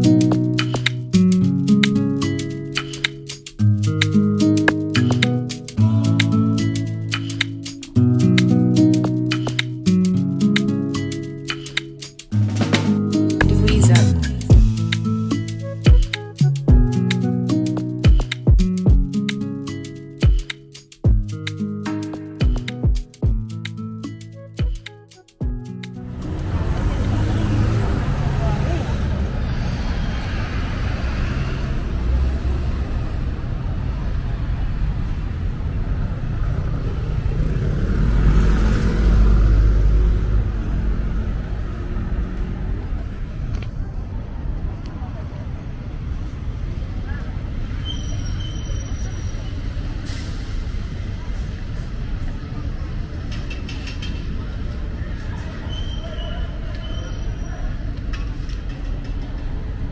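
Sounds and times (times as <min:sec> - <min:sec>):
street traffic passing: 0:00.0 - 0:59.9
heavy vehicle passing: 0:26.0 - 0:43.4.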